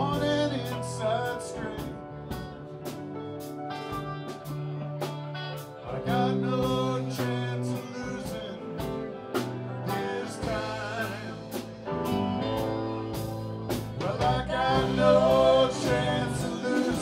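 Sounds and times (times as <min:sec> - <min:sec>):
person singing: 0:00.0 - 0:02.4, 0:05.8 - 0:12.2, 0:13.7 - 0:17.0
bass guitar: 0:00.0 - 0:17.0
electric guitar: 0:00.0 - 0:17.0
keyboard: 0:00.0 - 0:17.0.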